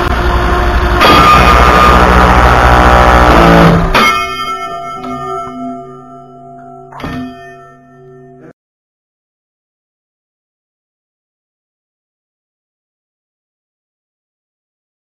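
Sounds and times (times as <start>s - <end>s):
electric motor running at full power: 0.0s - 4.0s
ringing tones: 1.0s - 8.6s.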